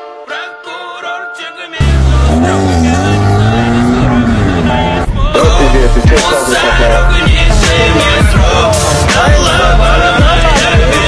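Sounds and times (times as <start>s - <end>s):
car engine revving hard: 1.8s - 6.2s.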